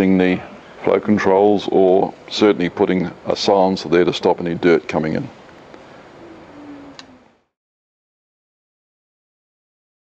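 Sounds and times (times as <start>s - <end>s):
faint room noise: 0.0s - 7.6s
light click: 6.9s - 7.1s.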